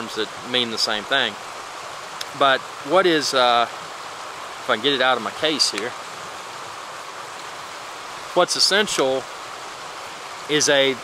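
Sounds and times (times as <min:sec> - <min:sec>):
creek running over rocks: 0:00.0 - 0:11.0.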